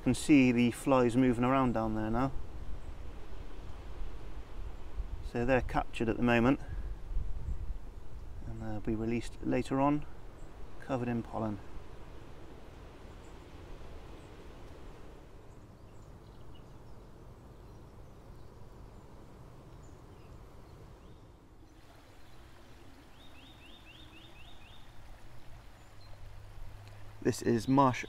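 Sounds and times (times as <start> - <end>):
faint distant birdsong: 0.0 - 28.0.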